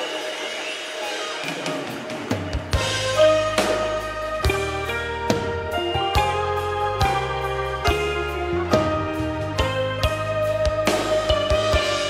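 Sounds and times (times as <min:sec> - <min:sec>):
worship band music: 0:00.0 - 0:12.0.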